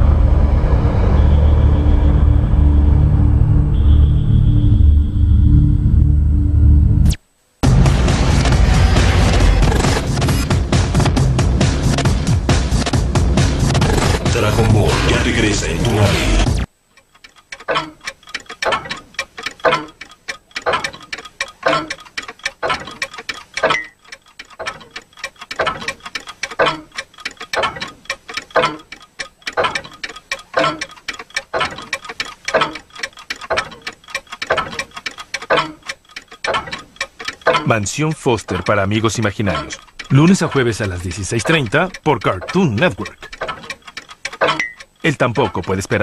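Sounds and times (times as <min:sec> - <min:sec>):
loud music: 0:07.6 - 0:16.7
clocks ticking: 0:07.6 - 0:46.0.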